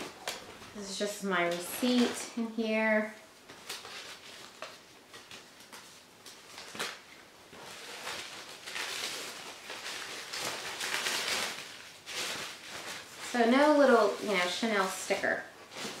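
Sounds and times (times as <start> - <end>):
paper and packaging rustling: 0.0 - 16.0.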